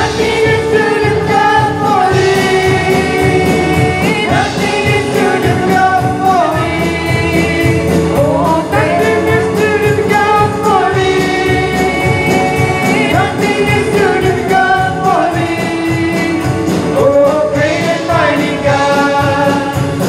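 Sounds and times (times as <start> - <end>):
band keeping steady beat: 0.0 - 20.0
electric guitars: 0.0 - 20.0
group singing in harmony: 0.0 - 20.0.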